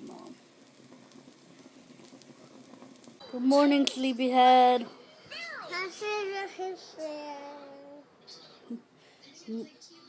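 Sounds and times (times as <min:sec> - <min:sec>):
toast sizzling in a pan: 0:00.0 - 0:05.2.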